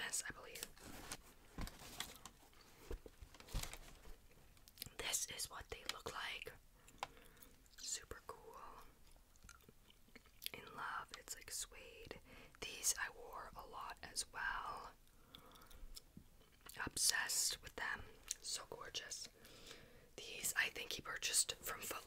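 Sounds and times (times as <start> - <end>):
person whispering: 0.0 - 0.8, 4.8 - 6.6, 7.8 - 9.0, 10.5 - 15.0, 16.8 - 19.4, 20.2 - 22.0.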